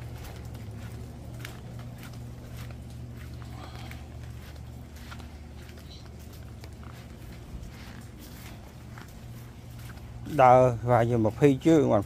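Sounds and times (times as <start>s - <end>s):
footsteps on paved path: 0.0s - 12.0s
steady low hum: 0.0s - 12.0s.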